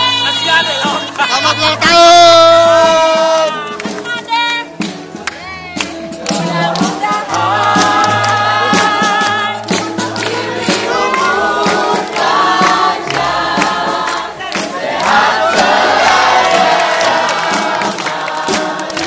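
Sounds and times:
backing music with bass line: 0:00.0 - 0:19.0
hands clapping along: 0:02.8 - 0:19.0
crowd singing loudly: 0:06.3 - 0:19.0.

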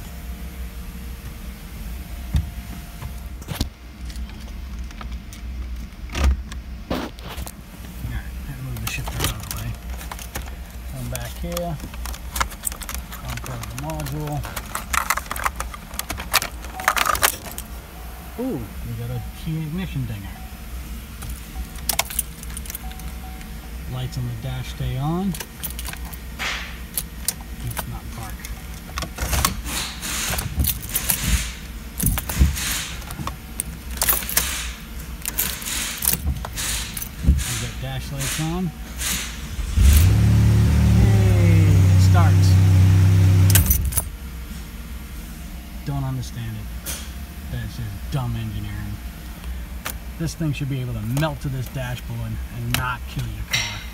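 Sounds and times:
car keys jingling: 0:08.6 - 0:18.4, 0:19.0 - 0:40.6, 0:43.4 - 0:44.2
car engine cranking on starter: 0:26.9 - 0:44.0.

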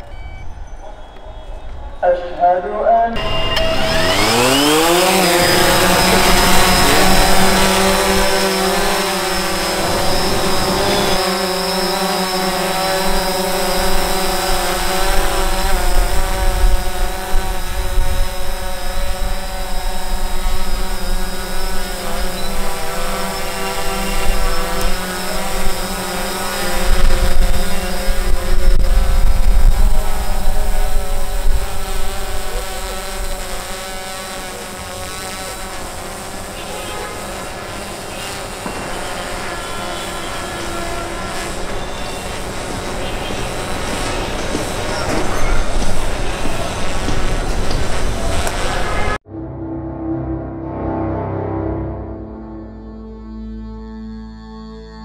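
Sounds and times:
drone propeller buzz: 0:02.8 - 0:55.0.

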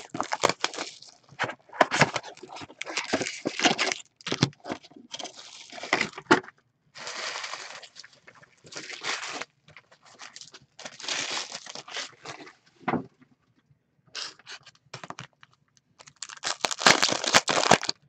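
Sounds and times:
shrink wrap crackling: 0:00.0 - 0:06.2, 0:07.0 - 0:12.5, 0:14.2 - 0:18.0
cardboard tearing: 0:00.0 - 0:06.3, 0:08.7 - 0:09.5, 0:10.1 - 0:12.5, 0:16.1 - 0:17.9
plastic rustling: 0:00.0 - 0:06.4, 0:07.0 - 0:12.6, 0:14.2 - 0:18.0.

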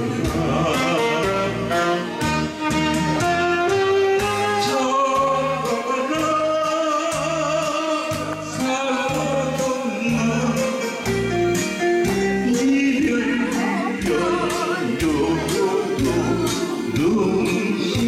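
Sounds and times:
man singing into microphone: 0:00.0 - 0:02.1, 0:04.3 - 0:11.3, 0:12.2 - 0:18.0
repeating bass line: 0:05.2 - 0:18.0.

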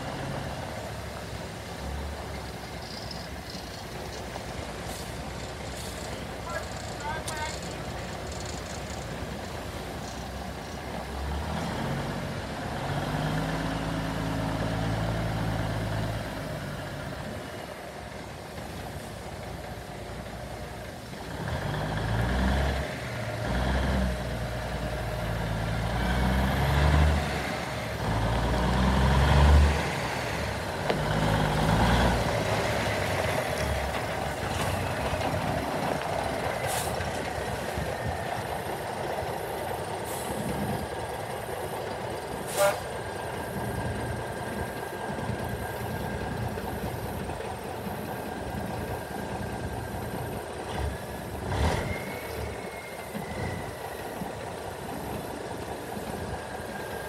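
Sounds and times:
diesel truck engine revving: 0:00.0 - 0:57.0.

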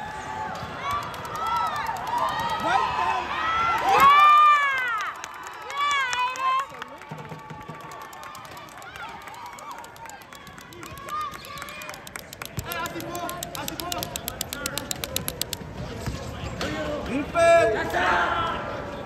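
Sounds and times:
fast high ticking: 0:08.4 - 0:15.7
basketball bouncing: 0:10.6 - 0:16.2.

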